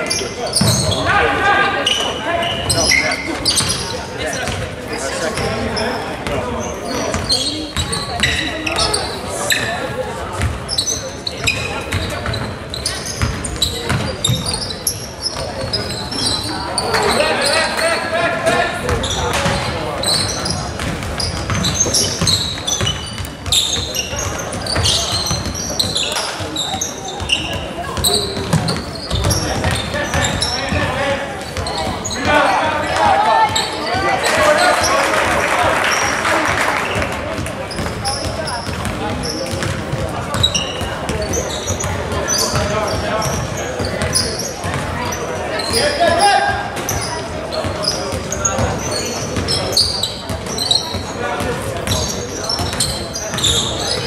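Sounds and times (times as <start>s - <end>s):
sneakers squeaking: 0.0s - 54.0s
basketball bouncing: 0.6s - 1.0s, 13.2s - 14.5s, 20.7s - 26.6s, 27.2s - 32.0s, 36.9s - 45.0s.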